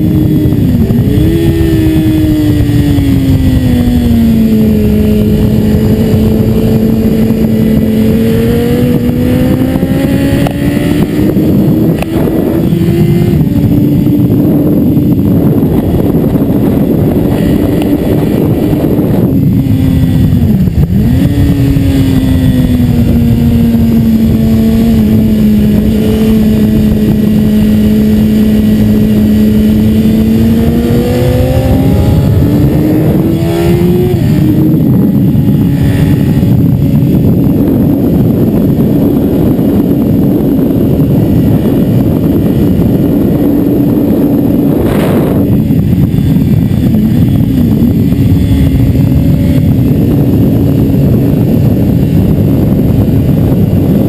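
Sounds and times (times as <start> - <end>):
motorcycle engine: 0.0 - 54.0
wind rushing: 0.0 - 54.0.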